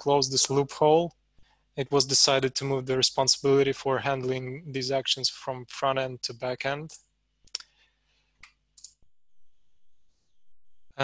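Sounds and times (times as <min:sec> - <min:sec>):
faint sharp clicks: 0:08.4 - 0:09.0.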